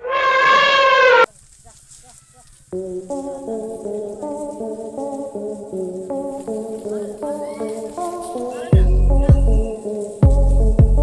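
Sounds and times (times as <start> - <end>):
elephant trumpeting: 0.0 - 1.3.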